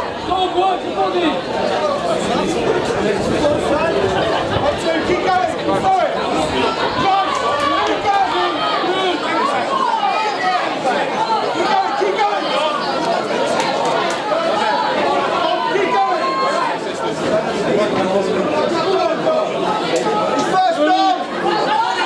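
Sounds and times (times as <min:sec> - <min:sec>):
crowd talking and shouting: 0:00.0 - 0:22.0.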